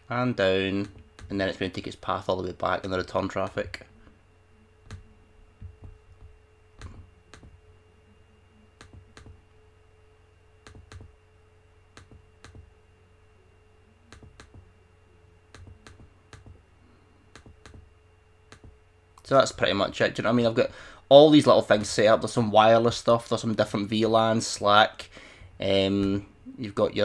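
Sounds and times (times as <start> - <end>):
faint electrical hum: 0.0 - 27.0
computer mouse clicks: 10.6 - 11.1, 14.1 - 14.6, 15.5 - 16.6.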